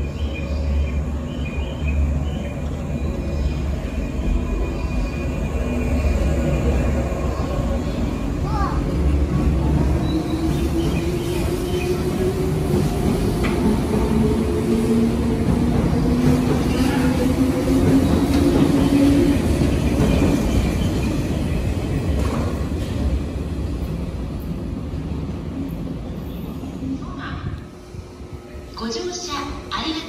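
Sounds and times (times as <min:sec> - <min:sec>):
electric train passing: 0:00.0 - 0:30.0.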